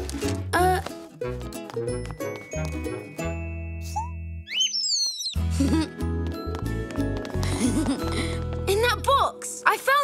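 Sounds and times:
jingling cartoon music: 1.2s - 9.8s
small bird chirping: 3.9s - 5.4s.

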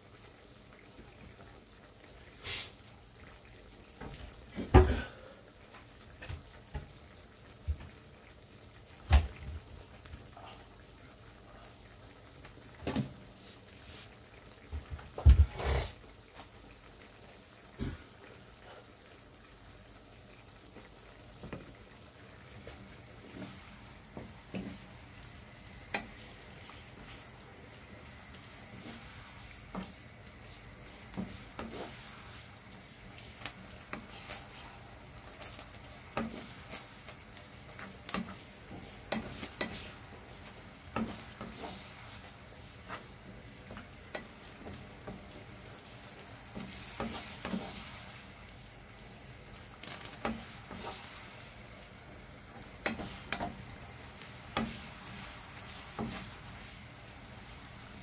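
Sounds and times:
sauce sizzling in a frying pan: 0.0s - 58.0s
wooden spatula scraping a pan: 28.5s - 30.0s, 30.8s - 37.0s, 37.7s - 48.4s, 49.6s - 51.6s, 52.5s - 57.1s.

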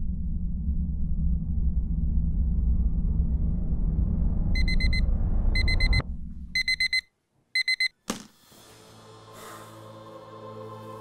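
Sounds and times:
low rumble: 0.0s - 6.8s
electronic alarm beeping: 4.6s - 5.0s, 5.6s - 6.0s, 6.6s - 7.9s
soft ambient music: 8.5s - 11.0s.

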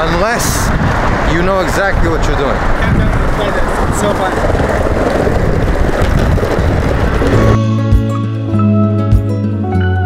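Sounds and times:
wind on microphone: 0.0s - 8.2s
skateboard wheels rolling on bricks: 2.8s - 7.7s
soft instrumental music: 7.4s - 10.0s.

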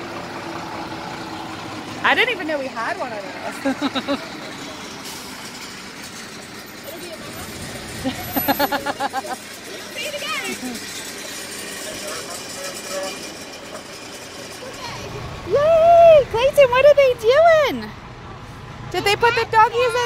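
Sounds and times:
fire engine engine running: 0.0s - 20.0s
traffic background: 0.0s - 20.0s
people's voices: 6.8s - 20.0s.

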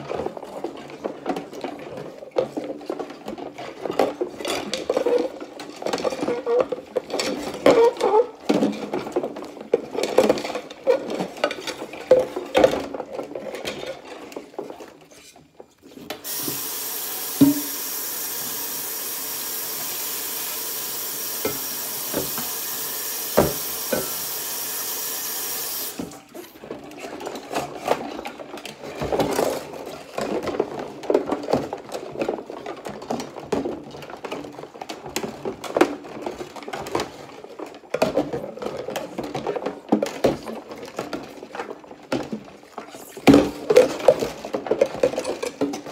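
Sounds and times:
faucet running: 16.2s - 26.1s.

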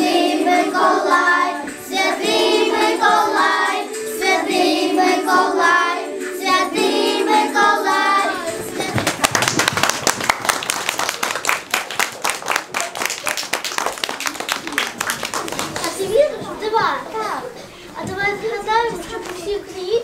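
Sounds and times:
children's voices: 0.0s - 9.3s, 14.2s - 20.0s
audience clapping: 8.8s - 16.2s
child speaking: 15.8s - 20.0s.

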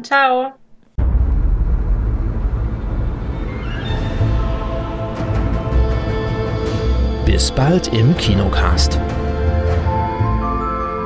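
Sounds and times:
deep rumbling drone: 1.0s - 8.2s.

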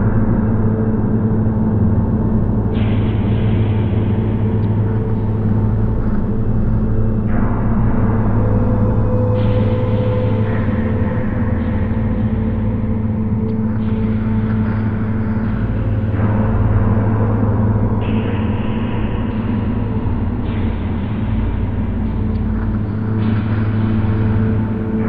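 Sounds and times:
dark ambient drone music: 0.0s - 25.0s.

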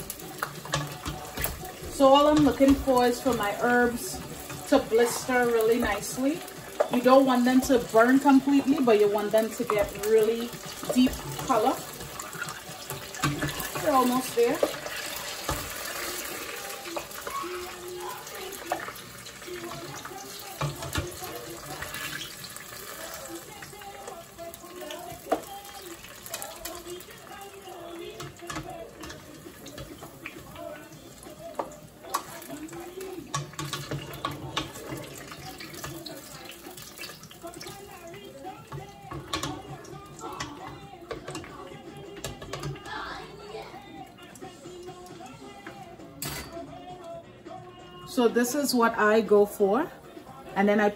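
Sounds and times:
sharp pops from frying vegetables: 0.0s - 17.5s, 18.2s - 24.2s, 28.0s - 41.5s
hot oil sizzling: 0.0s - 46.2s.

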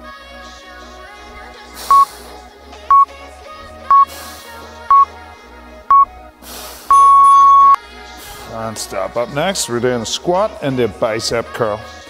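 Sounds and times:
background music: 0.0s - 12.0s
long timer beep: 6.9s - 7.8s
timer beeps: 6.9s - 7.8s.

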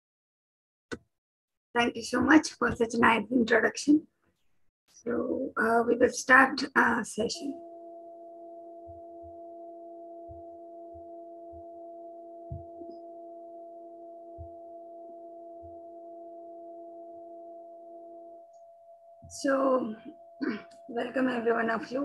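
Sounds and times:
hum of held tones: 5.1s - 22.0s.

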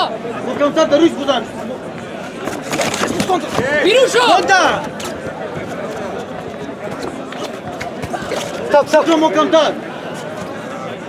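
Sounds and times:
spectators calling out and chattering: 0.0s - 11.0s.

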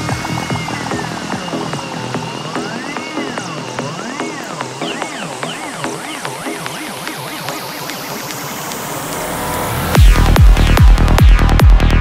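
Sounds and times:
electronic noise sweep: 0.0s - 12.0s
kick drum and bass: 0.0s - 12.0s
low synth tone rising in pitch: 0.0s - 12.0s.

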